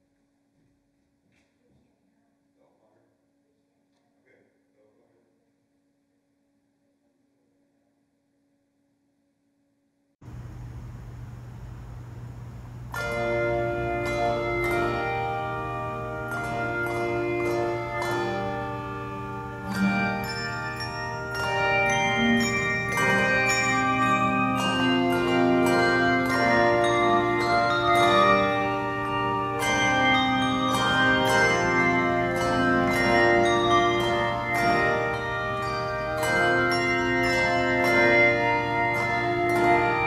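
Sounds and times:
steady low background hum: 10.2s - 30.7s
handbell choir playing: 12.9s - 40.0s.

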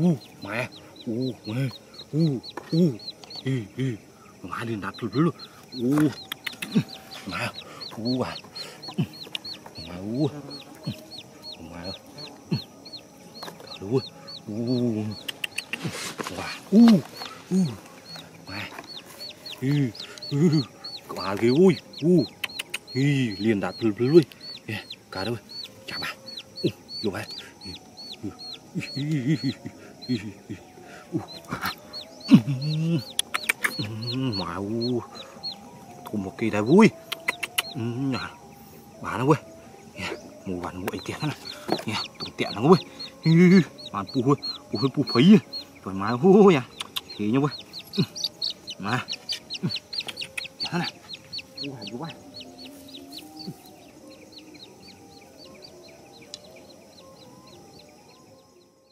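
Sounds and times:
chickens clucking: 0.0s - 58.0s
thin high chirp: 4.5s - 58.9s
sharp clicks: 5.9s - 6.8s, 15.2s - 15.8s, 22.3s - 23.0s, 33.1s - 33.9s, 46.7s - 47.2s
high-pitched chick cheeps: 21.9s - 23.4s, 37.0s - 37.8s.

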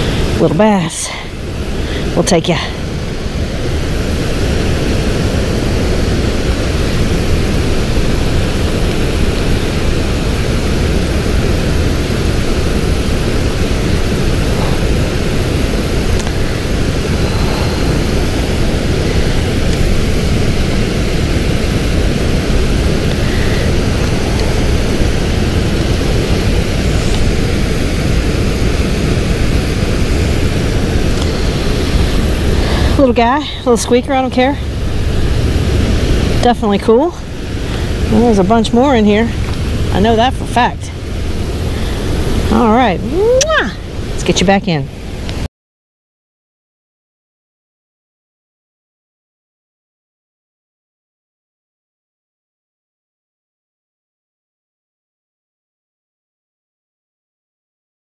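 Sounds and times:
loud rushing roar: 1.3s - 44.3s.

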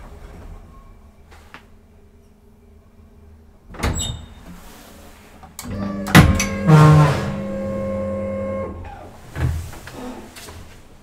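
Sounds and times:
elevator machinery humming: 5.6s - 9.3s.

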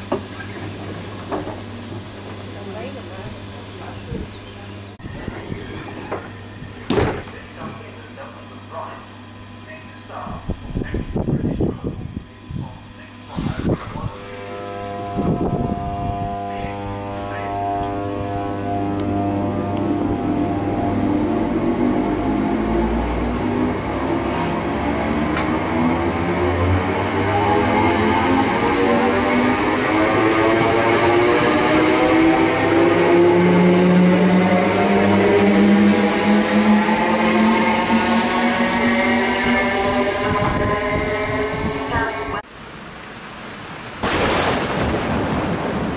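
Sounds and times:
wheels rumbling on rail: 0.0s - 9.3s, 13.3s - 42.8s
electric train motors whining: 0.0s - 10.2s, 13.2s - 42.4s
low hum: 2.4s - 42.5s.

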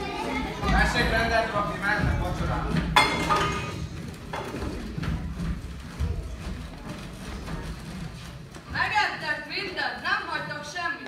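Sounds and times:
footsteps on wooden stage floor: 0.3s - 10.5s.

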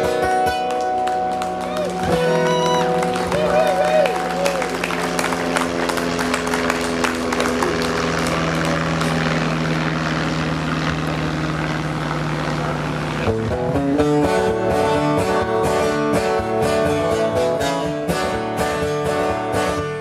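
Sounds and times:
audience applauding: 0.5s - 9.8s
low hum: 1.1s - 16.8s.

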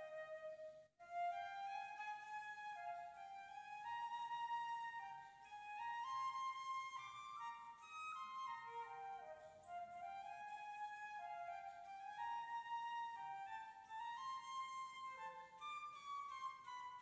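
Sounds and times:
slow flute melody: 0.0s - 17.0s.

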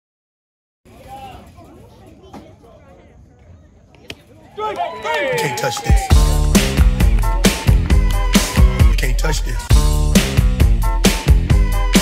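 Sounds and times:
faint chattering voices: 0.9s - 9.7s.

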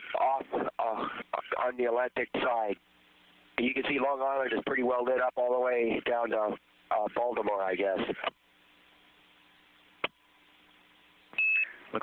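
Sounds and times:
radio hiss with low hum: 0.0s - 12.0s
short high beep: 11.4s - 11.8s.

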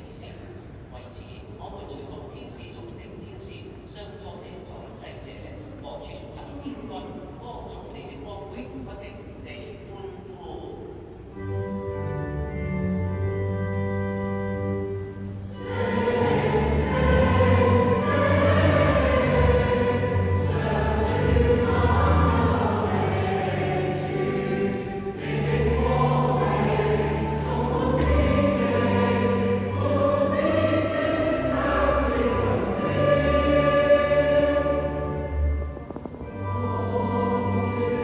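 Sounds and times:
organ chords: 11.2s - 38.0s
choir singing a hymn: 12.5s - 38.0s.

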